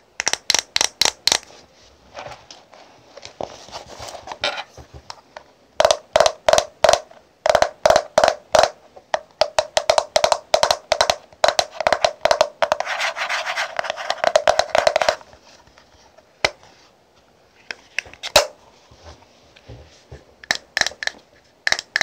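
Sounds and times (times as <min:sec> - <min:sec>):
soft handling sounds: 0:01.4 - 0:05.7, 0:12.7 - 0:20.4.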